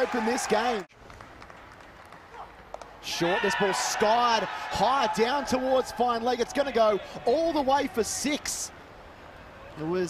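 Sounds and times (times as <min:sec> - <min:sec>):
open-air ground ambience: 0:00.0 - 0:10.0.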